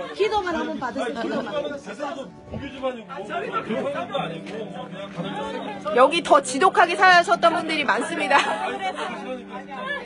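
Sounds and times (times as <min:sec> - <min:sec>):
overlapping conversation: 0:00.0 - 0:10.0.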